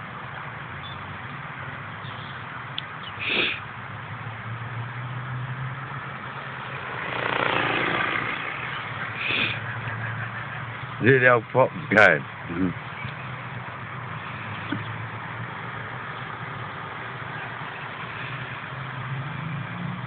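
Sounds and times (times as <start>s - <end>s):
rc helicopter rotor hum: 6.2s - 11.3s
rushing swell: 6.4s - 9.7s.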